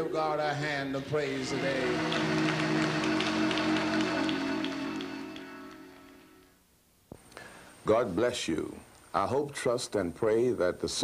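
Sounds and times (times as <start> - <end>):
church music sustained chord: 0.0 - 6.5
hands clapping: 1.5 - 6.5.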